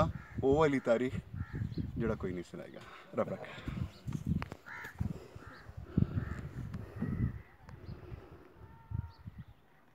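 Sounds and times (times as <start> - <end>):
low rumbling on microphone: 3.7 - 9.6
bird calling: 3.7 - 9.9.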